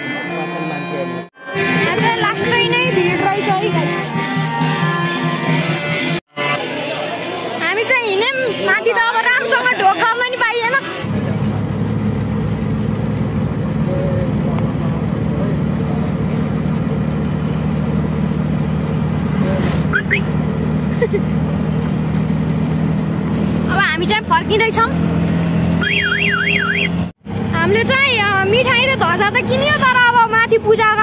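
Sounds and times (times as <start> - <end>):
auto-rickshaw engine running: 1.5 - 31.0.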